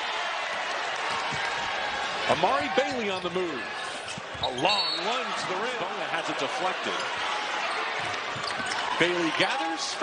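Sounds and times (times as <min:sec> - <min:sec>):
arena crowd noise: 0:00.0 - 0:10.0.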